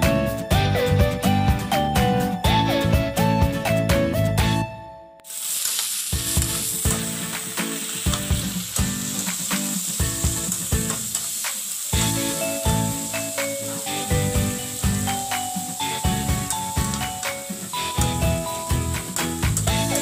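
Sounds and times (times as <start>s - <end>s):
background music: 0.0s - 5.2s, 6.1s - 20.0s
shrimp sizzling in a hot pan: 5.2s - 20.0s.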